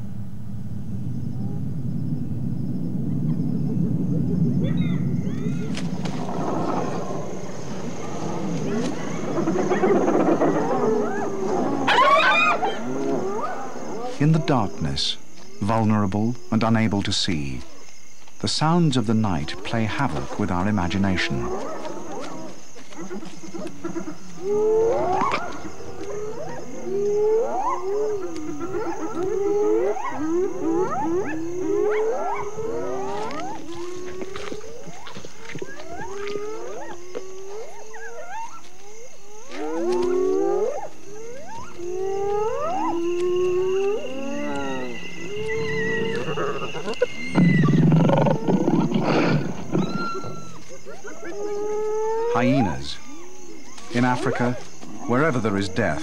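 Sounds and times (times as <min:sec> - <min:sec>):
hyenas whooping: 0:03.1 - 0:14.6, 0:20.8 - 0:56.0
hyena growling: 0:06.1 - 0:14.5, 0:39.4 - 0:53.6
hyena giggling cackles: 0:46.1 - 0:51.5.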